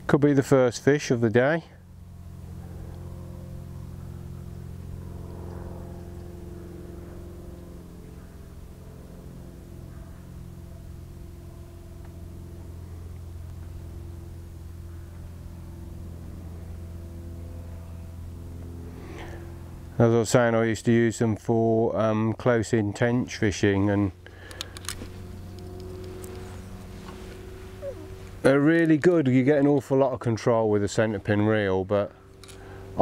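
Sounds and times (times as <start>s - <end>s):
engine humming steadily: 0.0s - 33.0s.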